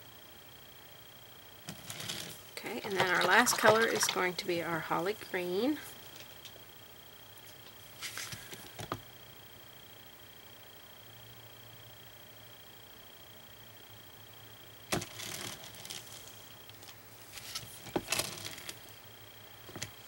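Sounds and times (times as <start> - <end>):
faint high whine: 0.0 - 20.0.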